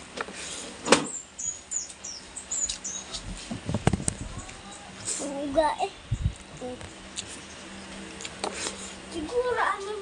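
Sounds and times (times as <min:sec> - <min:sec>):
small bird chirping: 0:01.1 - 0:05.0, 0:06.0 - 0:08.3.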